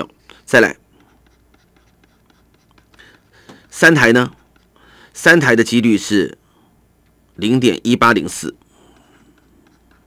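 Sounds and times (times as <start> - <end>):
stylus tapping and scratching: 0.9 - 4.9, 8.7 - 10.0.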